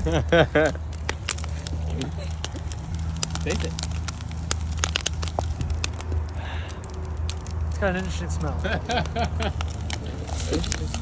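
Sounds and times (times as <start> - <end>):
fire crackling and popping: 0.0 - 11.0
low rumble: 0.0 - 11.0.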